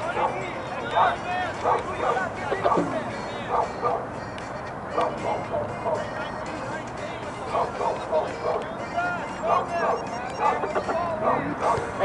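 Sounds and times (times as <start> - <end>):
dog barking: 0.0 - 4.0, 5.0 - 6.1, 7.5 - 8.6, 9.4 - 12.0
murmur of voices: 0.0 - 12.0.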